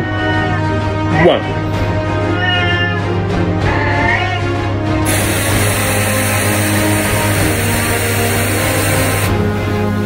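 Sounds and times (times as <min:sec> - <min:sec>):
background music: 0:00.0 - 0:10.0
aerosol spray can hissing: 0:05.0 - 0:09.6.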